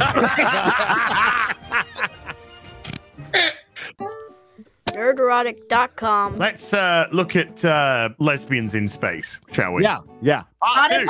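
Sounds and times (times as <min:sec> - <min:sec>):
people laughing: 0:00.0 - 0:02.4.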